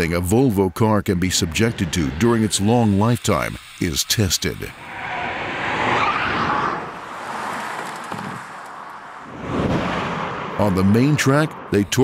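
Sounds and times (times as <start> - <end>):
car passing at speed: 4.8 - 11.7.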